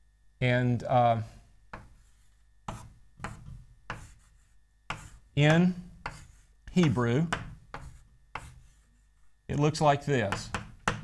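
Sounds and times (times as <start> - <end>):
chalk writing on chalkboard: 1.7 - 9.4.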